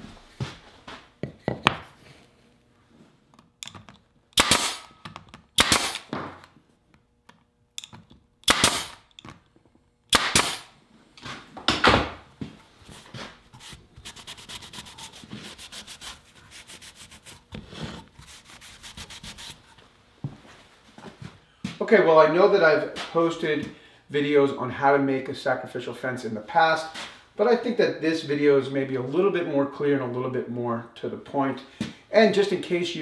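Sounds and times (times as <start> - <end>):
pneumatic nailer firing: 4.4 - 6.5, 7.8 - 9.2, 10.1 - 10.7
rag wiping wood: 12.9 - 19.8.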